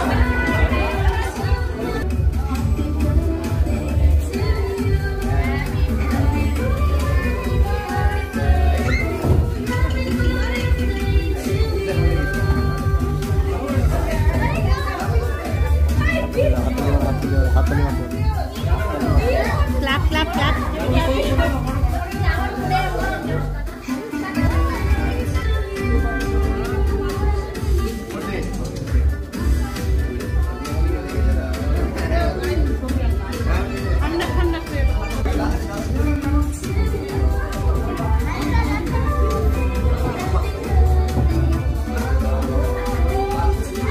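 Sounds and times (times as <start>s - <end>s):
background music with bass beat: 0.0s - 43.9s
children's voices: 0.0s - 43.9s.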